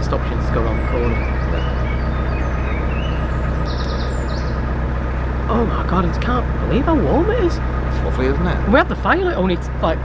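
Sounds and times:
birds chirping: 0.0s - 10.0s
boat engine droning: 0.0s - 10.0s.

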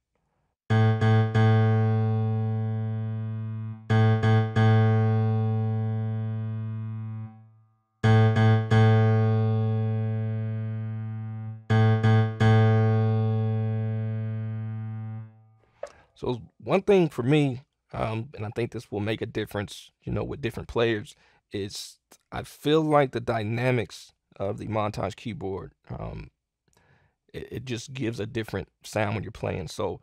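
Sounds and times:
piano and electric piano chords: 0.7s - 7.4s, 8.0s - 15.3s.

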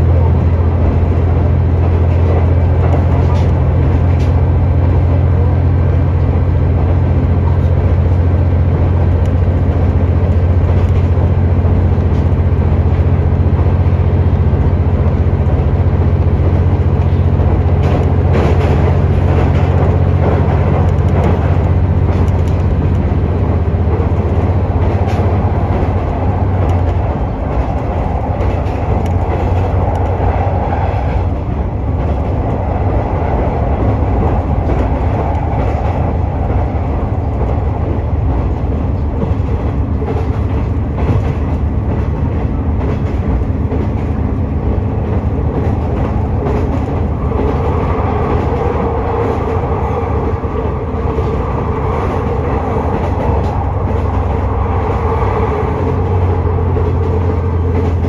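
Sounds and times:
diesel railcar engine drone: 0.0s - 58.0s
rail and wheel noise: 0.0s - 58.0s.

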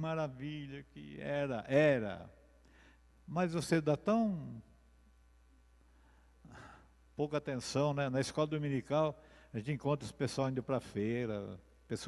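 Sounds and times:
breath close to microphone: 2.6s - 3.2s, 5.9s - 7.0s, 9.2s - 9.6s.

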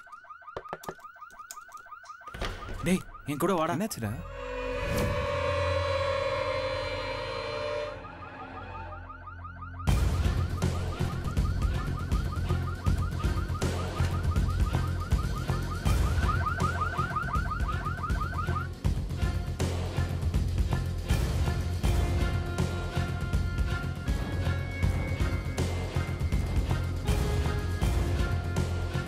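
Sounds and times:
car alarm warbling: 0.0s - 18.8s
held musical drone: 4.2s - 9.2s.

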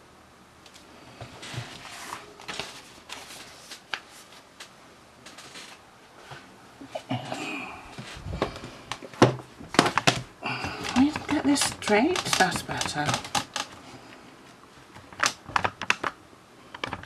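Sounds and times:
paper rustling: 1.4s - 6.4s.

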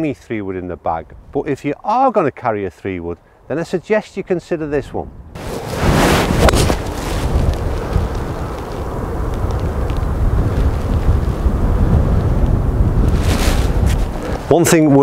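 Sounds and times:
wind buffeting microphone: 4.7s - 15.0s.

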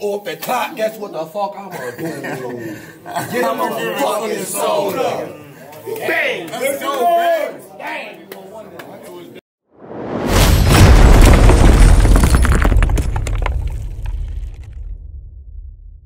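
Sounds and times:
crowd voices: 2.3s - 9.4s
heavy boom: 9.8s - 16.0s
deep rumble: 9.9s - 16.0s
shattering debris: 10.3s - 15.0s.

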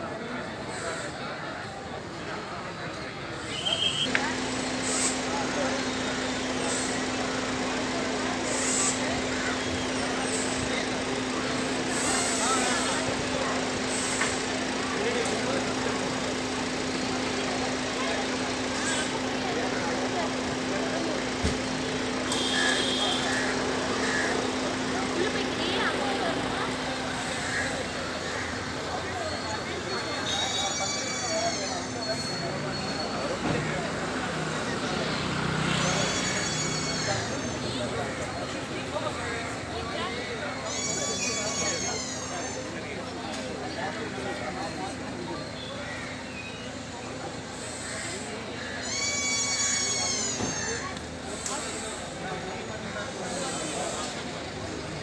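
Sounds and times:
passing traffic: 0.0s - 55.0s
people talking: 0.0s - 55.0s.

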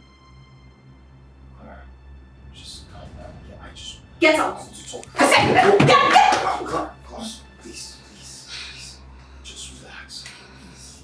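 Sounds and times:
wordless cries and yelps: 5.6s - 6.9s.

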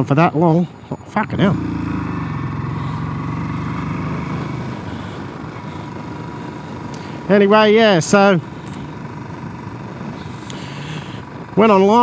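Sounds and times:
motorcycle engine running: 1.3s - 12.0s.

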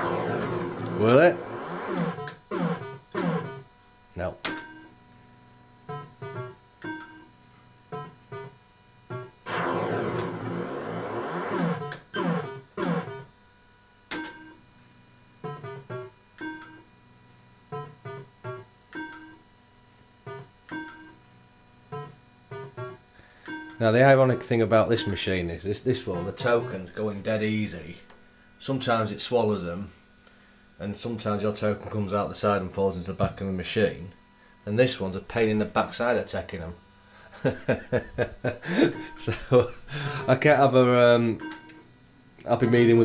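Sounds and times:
sweeping electronic sound: 0.0s - 3.6s, 9.5s - 13.1s
fruit machine beeps and jingles: 23.5s - 25.4s, 26.1s - 26.9s, 42.5s - 43.0s.

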